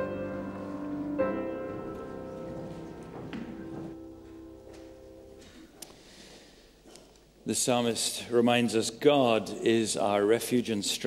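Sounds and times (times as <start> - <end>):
piano chords: 0.0 - 5.7.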